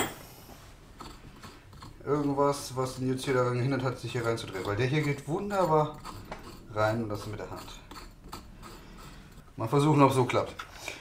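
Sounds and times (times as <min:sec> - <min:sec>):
sharp metal clink: 0:00.0 - 0:00.3.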